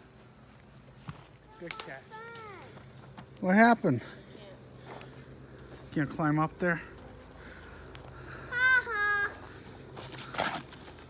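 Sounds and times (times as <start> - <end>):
rustling in leaves and brush: 7.1 - 11.0.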